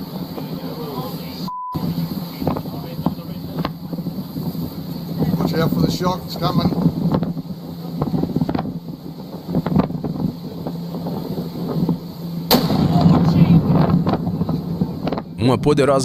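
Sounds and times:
sustained loud noise: 0.0 - 16.0
loud eruption boom: 9.6 - 15.5.

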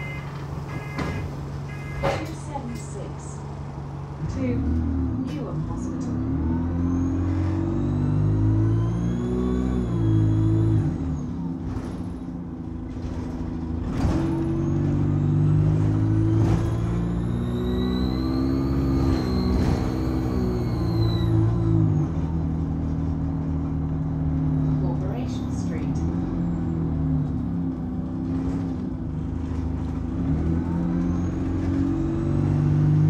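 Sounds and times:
bus diesel engine accelerating: 0.0 - 33.0
turbocharger whistle: 7.8 - 10.9, 16.0 - 21.7.

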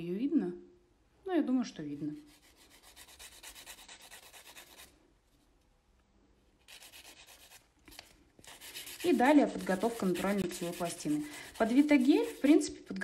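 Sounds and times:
nail file scraping fingernail: 2.2 - 4.9, 6.6 - 12.8.

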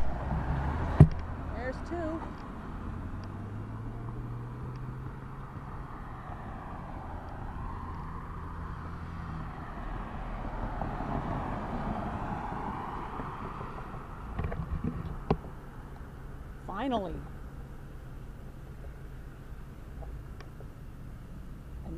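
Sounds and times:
car engine low hum: 0.0 - 21.9
tyre rush of passing vehicles: 0.0 - 21.9.

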